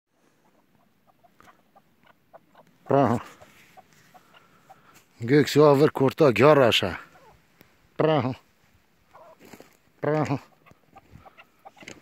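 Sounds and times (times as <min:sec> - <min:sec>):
partridge clucking calls: 0:00.1 - 0:12.0.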